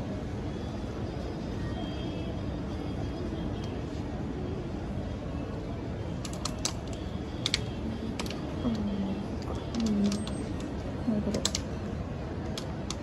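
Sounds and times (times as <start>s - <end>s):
city street traffic: 0.0s - 13.0s.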